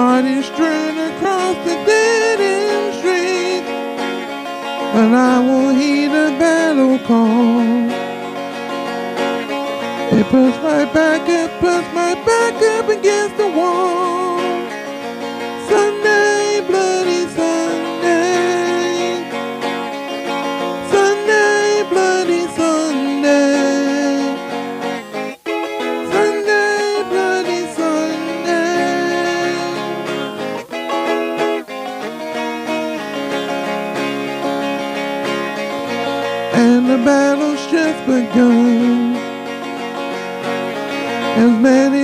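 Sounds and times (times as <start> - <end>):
man singing: 0.0 - 8.1, 9.8 - 19.4, 20.4 - 24.9, 26.0 - 30.4, 35.6 - 39.8, 41.0 - 42.0
twelve-string electric guitar: 0.0 - 42.0.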